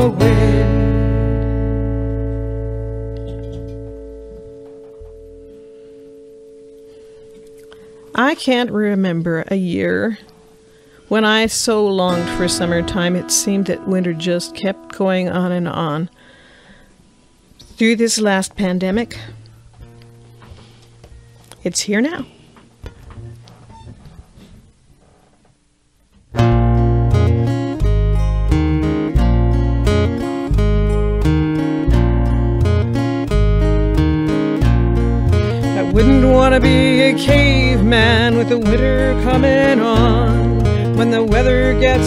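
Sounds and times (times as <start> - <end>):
acoustic guitar chord ringing: 0.0 - 17.5, 26.4 - 42.0.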